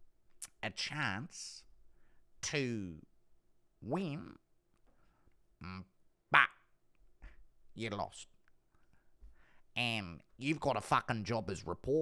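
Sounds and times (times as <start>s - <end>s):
man speaking in impression voice: 0.4s - 1.7s, 2.4s - 3.1s, 3.8s - 4.4s, 5.6s - 6.6s, 7.8s - 8.4s, 9.8s - 12.0s.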